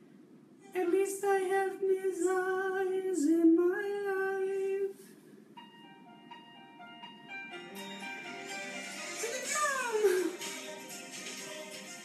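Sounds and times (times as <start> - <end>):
instrumental accompaniment: 5.6 - 12.0.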